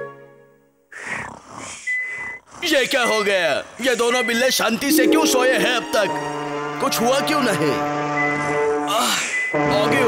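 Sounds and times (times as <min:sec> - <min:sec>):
background music: 0:00.0 - 0:00.9, 0:04.8 - 0:10.0
cartoon character snoring: 0:00.9 - 0:03.8.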